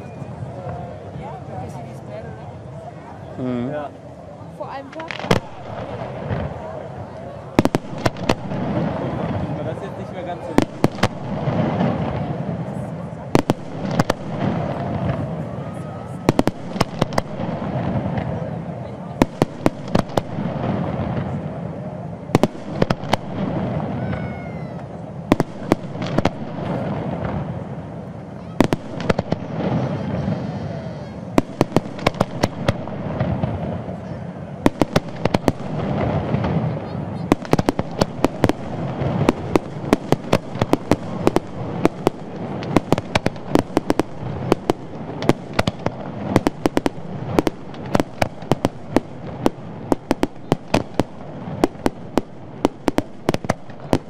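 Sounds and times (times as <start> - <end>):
fireworks bangs: 0.0 - 3.3, 4.4 - 54.0
continuous rumble: 0.0 - 54.0.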